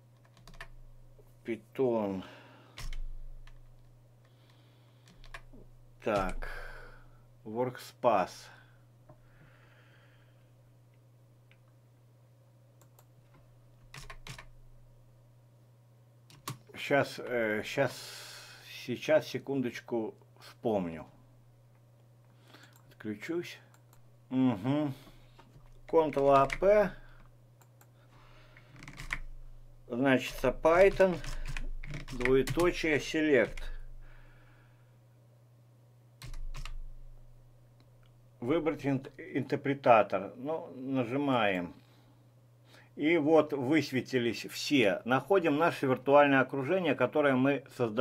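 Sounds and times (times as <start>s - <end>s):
low electrical hum: 0.0s - 48.0s
computer keyboard typing: 0.2s - 0.8s, 2.8s - 3.9s, 5.0s - 5.5s, 6.1s - 6.4s, 13.9s - 14.5s, 16.3s - 16.6s, 26.0s - 26.9s, 28.7s - 29.4s, 30.3s - 32.8s, 36.2s - 36.9s.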